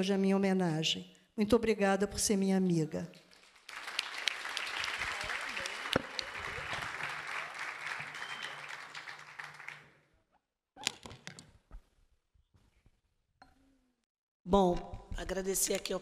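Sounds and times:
audience applauding: 3.3 - 10.0.

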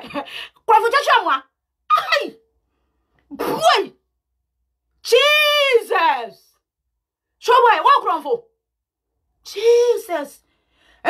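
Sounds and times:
woman's wordless vocal outbursts: 0.6 - 2.4, 3.2 - 4.0, 5.0 - 6.5.

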